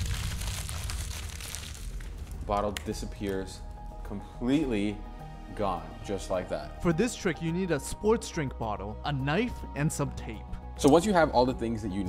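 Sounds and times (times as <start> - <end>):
paper bag crumpling: 0.0 - 2.4.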